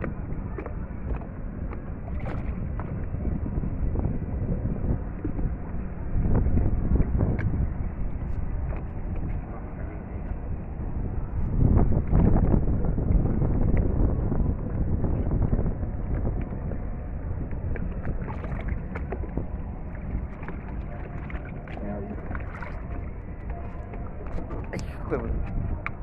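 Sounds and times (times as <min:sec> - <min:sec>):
wind rumbling on microphone: 0:00.0 - 0:26.0.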